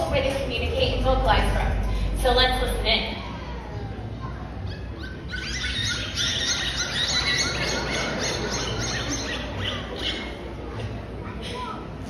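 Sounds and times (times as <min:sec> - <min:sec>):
dolphins whistling: 0:03.1 - 0:11.6.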